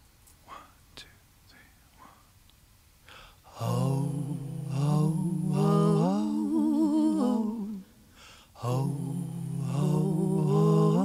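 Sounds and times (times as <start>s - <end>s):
faint whispered voice: 0.4s - 2.3s.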